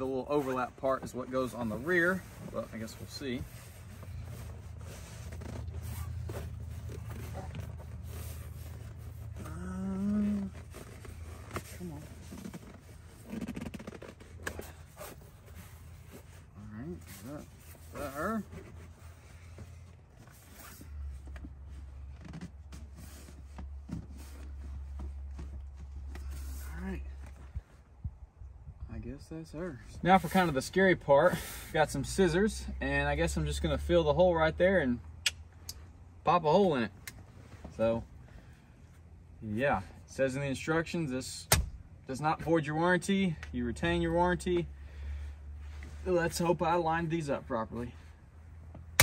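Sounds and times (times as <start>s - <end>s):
fabric seat cover rustling: 0.0s - 27.7s
person muttering: 9.4s - 10.6s.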